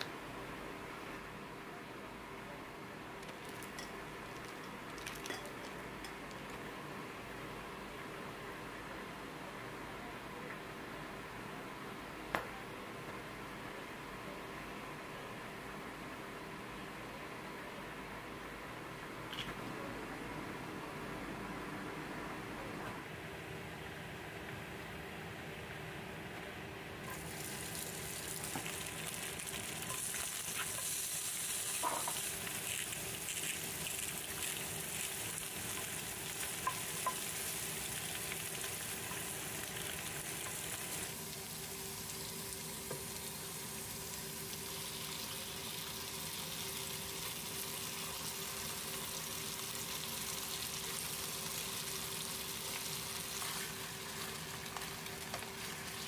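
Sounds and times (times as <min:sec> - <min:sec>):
food sizzling in oil: 0:27.1 - 0:56.0.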